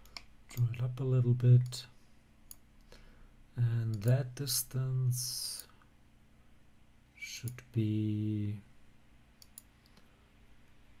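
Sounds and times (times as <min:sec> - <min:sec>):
faint mouse clicks: 0:09.4 - 0:10.1.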